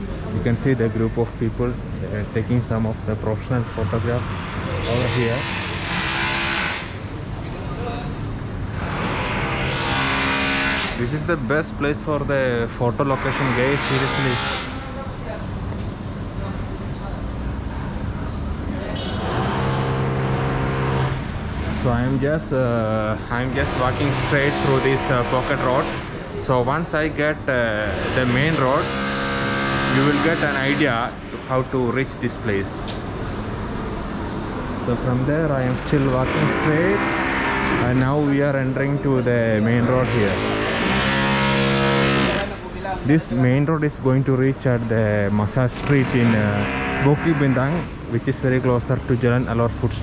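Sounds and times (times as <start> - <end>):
street noise: 0.0 - 50.0
vehicle engine humming: 0.0 - 50.0.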